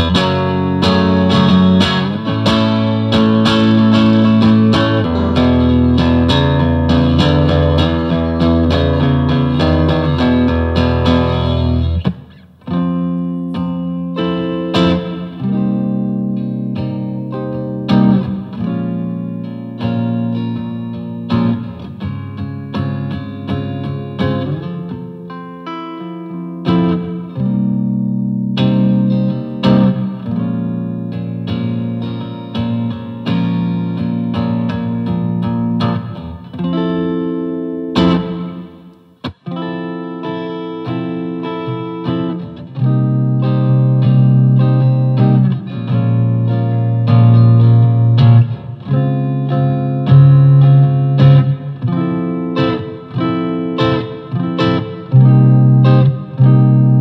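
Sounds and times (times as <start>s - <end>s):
electric guitar riff: 0.0s - 57.0s.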